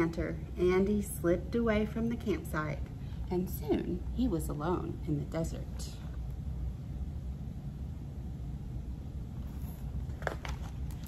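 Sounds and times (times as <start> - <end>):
low room hum: 0.0 - 11.0
book page turning: 9.4 - 11.0.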